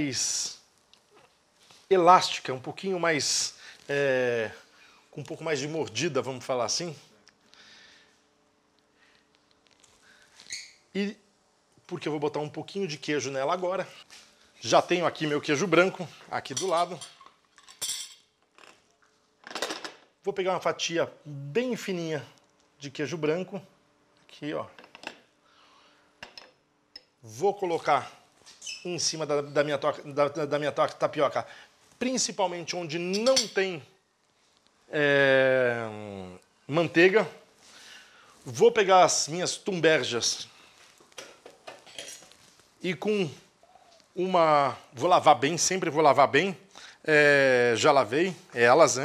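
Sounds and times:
kitchen utensils clattering: 16.6 - 18.2, 41.2 - 42.3.

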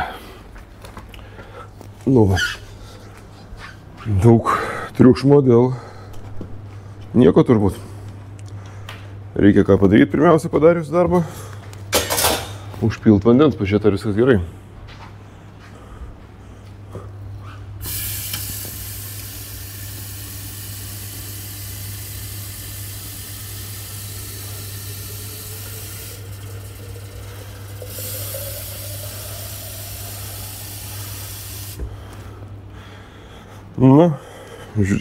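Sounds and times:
steady low hum: 0.0 - 35.0
water running into a sink: 17.8 - 31.8.

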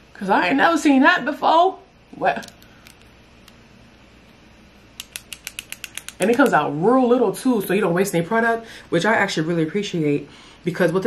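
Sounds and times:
lip liner mechanism clicking: 5.0 - 6.6.

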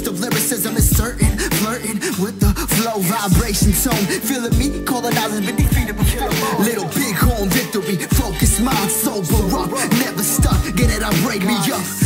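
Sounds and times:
hip hop beat with heavy kick: 0.0 - 12.0
gliding speech-like vocals: 4.0 - 10.4.

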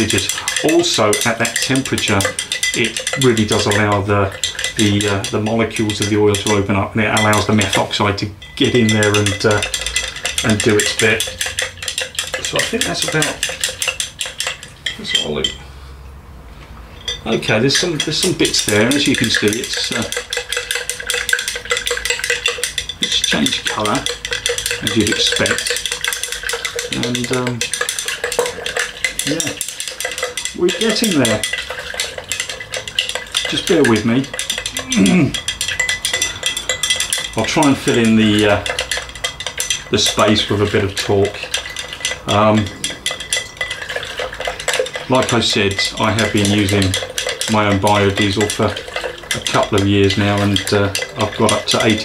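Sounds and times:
stick clicking against glass jar: 0.0 - 15.6, 17.0 - 52.0.

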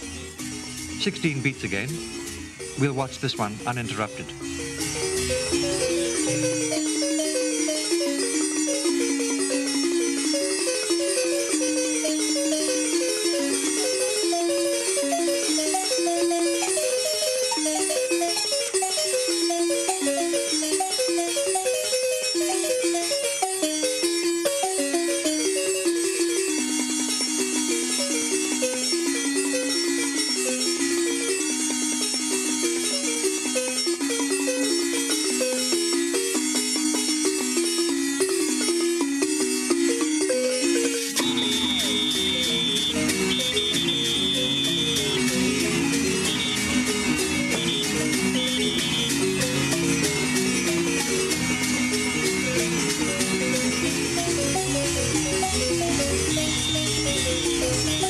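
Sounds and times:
xylophone ensemble playing: 0.0 - 58.0.

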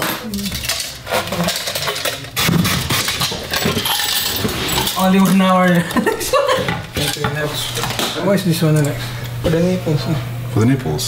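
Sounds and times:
plastic parts clicking and knocking: 0.0 - 4.3.

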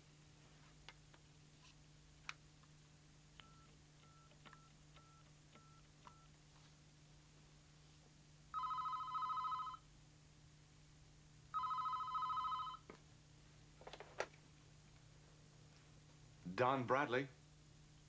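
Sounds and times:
phone keypad beeping: 3.4 - 6.3
telephone electronic ringer trilling: 8.6 - 9.8, 11.6 - 12.8.

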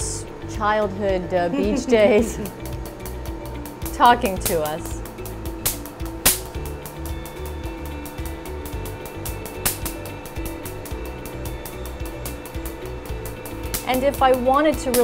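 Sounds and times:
soft background music: 0.0 - 15.0
louder snaps: 5.6 - 6.6.

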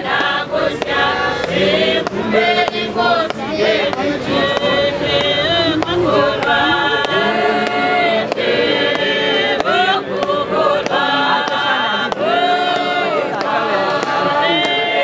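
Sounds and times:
congregation singing a hymn: 0.0 - 15.0
steady beat of sharp strikes: 0.0 - 15.0.

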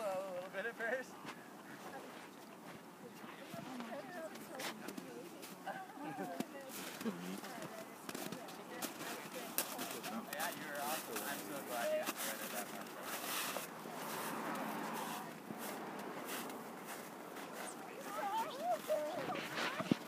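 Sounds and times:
people talking indistinctly: 0.0 - 20.0
rustles: 1.2 - 20.0.

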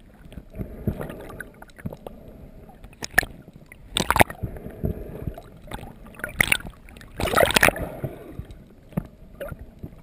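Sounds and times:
muffled underwater wash: 0.0 - 10.0
water rushes: 0.0 - 10.0.

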